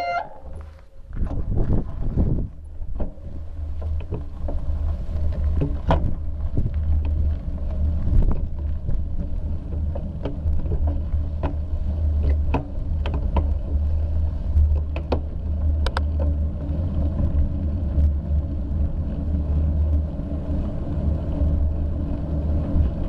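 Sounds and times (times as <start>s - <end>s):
bike knocks and rattles: 0.0s - 23.0s
wind rumbling on microphone: 0.0s - 23.0s.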